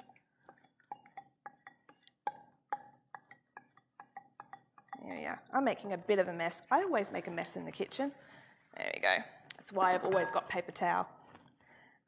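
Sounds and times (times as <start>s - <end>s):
wooden spoon clinking glass bowl: 0.0s - 7.2s.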